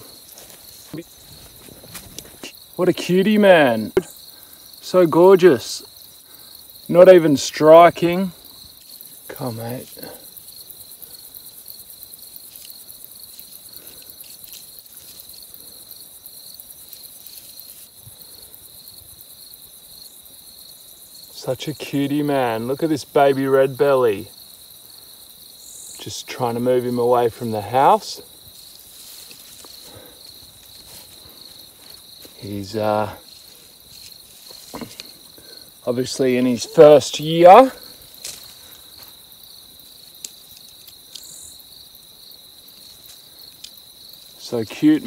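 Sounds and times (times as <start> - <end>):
insects trilling: 0.0 - 45.0.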